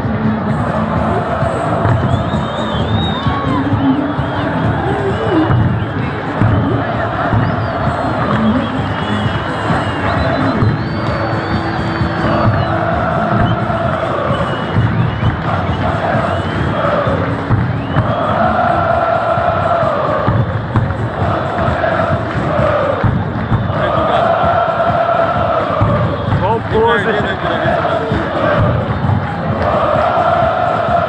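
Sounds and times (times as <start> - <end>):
stadium crowd chanting: 0.0 - 31.0
taiko drums beating: 0.0 - 31.0.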